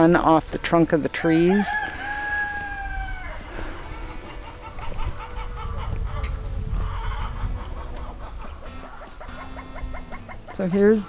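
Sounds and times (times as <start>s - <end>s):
chickens clucking: 0.0s - 11.0s
wind rumble on microphone: 1.8s - 10.6s.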